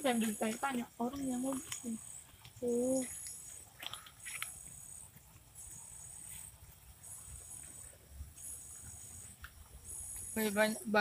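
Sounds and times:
high thin insect buzz: 0:04.2 - 0:10.8.

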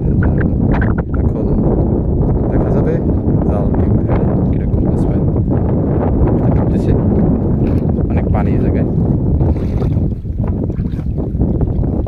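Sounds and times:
wind buffeting microphone: 0:00.0 - 0:12.0
water sloshing and splashing: 0:06.2 - 0:12.0.

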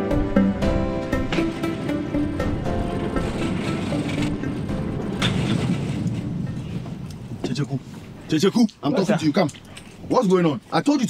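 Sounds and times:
background music: 0:00.0 - 0:07.4.

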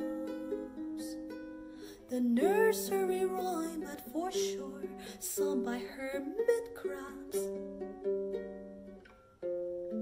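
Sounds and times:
small guitar fingerstyle plucking: 0:00.0 - 0:10.0.

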